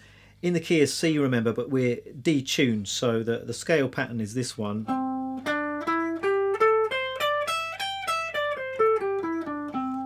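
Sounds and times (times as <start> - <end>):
electric guitar playing a scale: 4.9 - 10.0.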